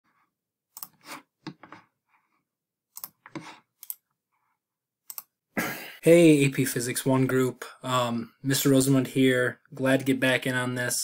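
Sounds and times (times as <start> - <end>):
computer mouse clicks: 0.8 - 1.8, 3.0 - 4.0, 5.1 - 5.3.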